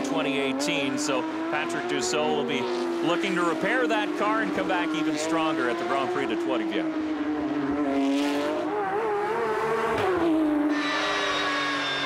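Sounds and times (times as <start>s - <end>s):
race car engine at high revs: 0.0s - 12.0s.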